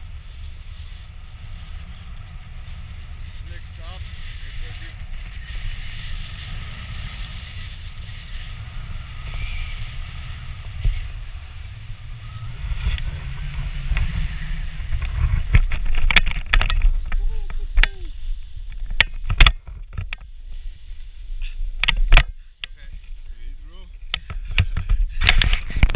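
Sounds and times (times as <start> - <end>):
wind buffeting microphone: 0.0 - 25.9.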